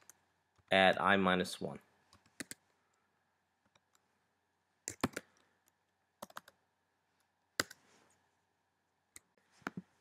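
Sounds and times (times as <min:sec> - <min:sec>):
keyboard typing: 0:02.1 - 0:02.6, 0:04.8 - 0:06.6, 0:07.6 - 0:07.8.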